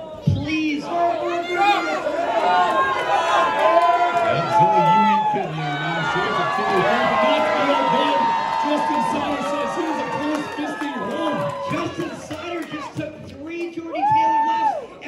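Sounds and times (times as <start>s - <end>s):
crowd shouting and yelling: 0.0s - 15.0s.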